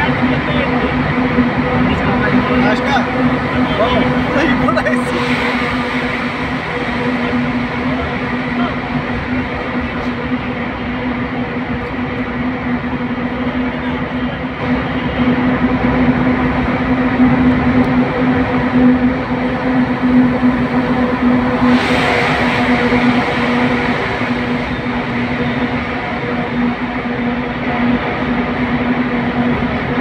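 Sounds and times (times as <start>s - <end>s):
car road and engine noise: 0.0s - 30.0s
rush of passing lorry: 18.8s - 28.3s.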